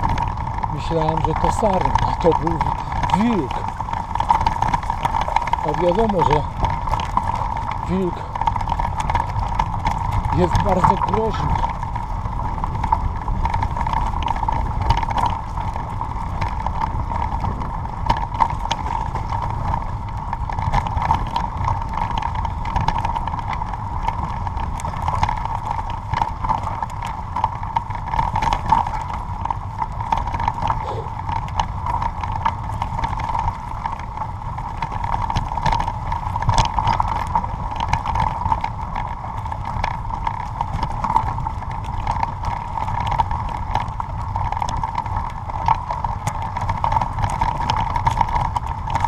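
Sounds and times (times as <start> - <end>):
vehicle rattling on dirt track: 0.0 - 49.0
steady whine: 30.6 - 31.4.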